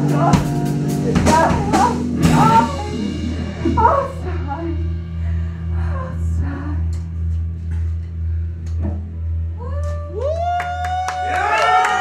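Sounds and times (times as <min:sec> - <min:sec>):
guitar amplifier humming: 0:00.0 - 0:12.0.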